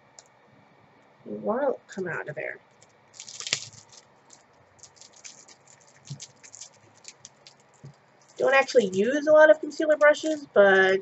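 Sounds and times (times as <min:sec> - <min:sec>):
plastic packaging crinkling: 0:02.7 - 0:11.0.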